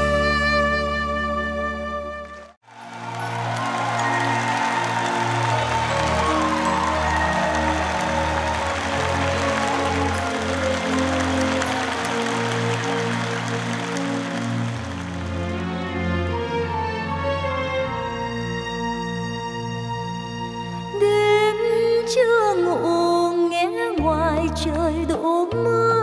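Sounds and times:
audience applauding: 2.2 - 16.6.

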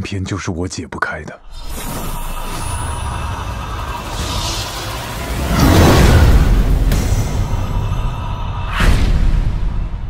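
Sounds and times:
low rumbling drone: 1.4 - 10.0
whoosh: 1.5 - 10.0.

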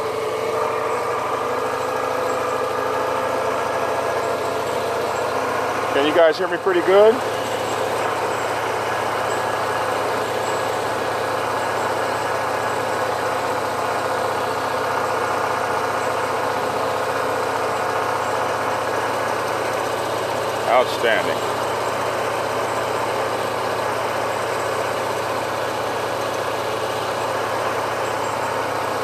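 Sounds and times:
road noise: 0.0 - 28.8
motorcycle engine running: 0.0 - 29.0.

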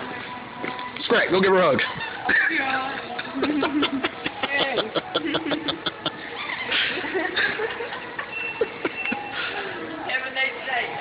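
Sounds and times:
store background noise: 0.0 - 11.0.

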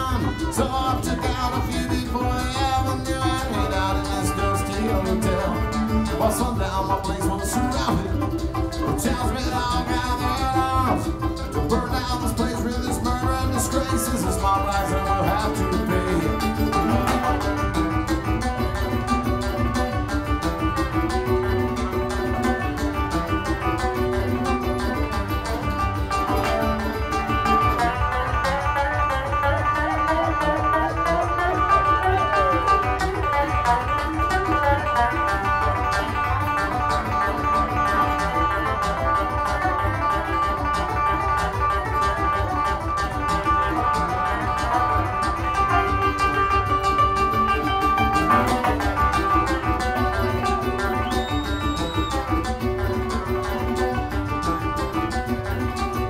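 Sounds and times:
banjo picking: 0.0 - 56.0
fast steady bass: 0.0 - 56.0
guitar picking: 0.0 - 56.0
mandolin picking: 0.0 - 56.0.

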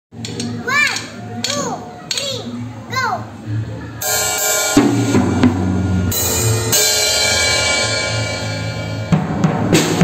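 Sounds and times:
child calling: 0.5 - 3.3.

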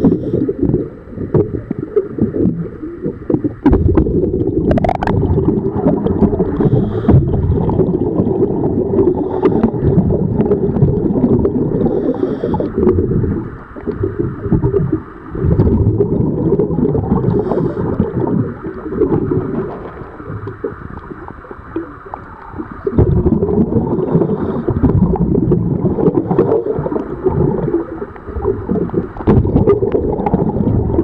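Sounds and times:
underwater rumbling and bubbling: 0.0 - 31.0.

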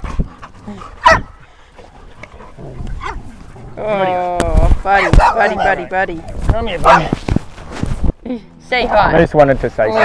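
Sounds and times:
dog barking: 1.0 - 1.4, 5.2 - 5.8, 6.8 - 7.1.

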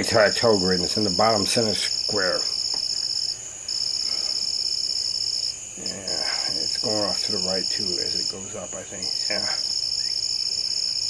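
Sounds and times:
night insects trilling: 0.0 - 11.0.

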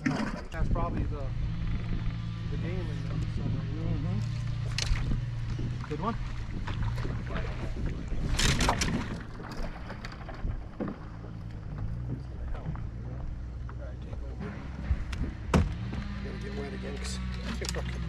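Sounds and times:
steady low hum: 0.4 - 18.0.

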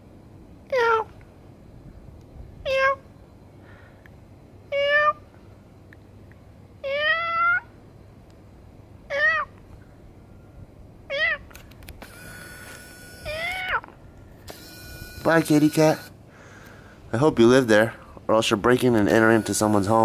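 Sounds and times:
cat meowing: 2.6 - 3.0, 4.7 - 5.2, 6.8 - 7.7, 9.1 - 9.6, 11.1 - 11.5, 13.2 - 13.9.

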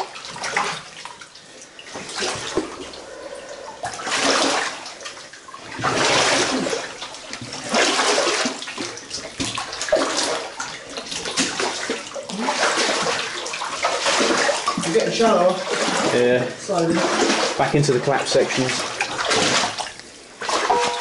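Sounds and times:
footsteps splashing in shallow water: 3.9 - 14.9, 18.6 - 21.0.

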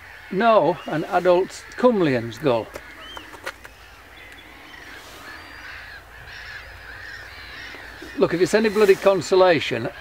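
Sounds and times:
gulls calling: 0.0 - 10.0.

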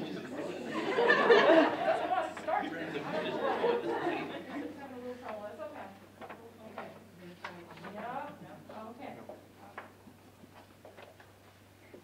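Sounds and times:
indistinct chatter in a hall: 0.0 - 10.8.

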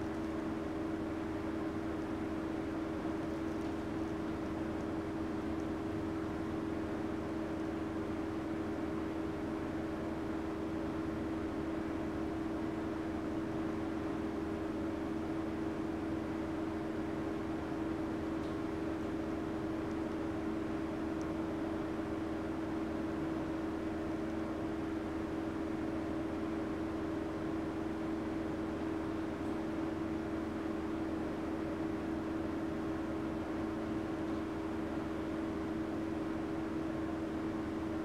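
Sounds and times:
low mechanical hum: 0.0 - 38.0.

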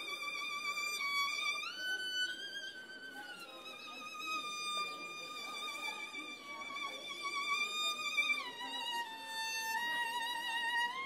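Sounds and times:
slow violin melody: 0.0 - 11.0.

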